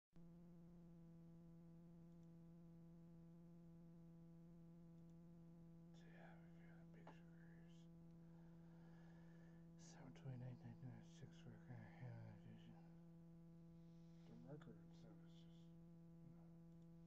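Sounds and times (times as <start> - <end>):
faint buzzing hum: 0.2 - 17.0.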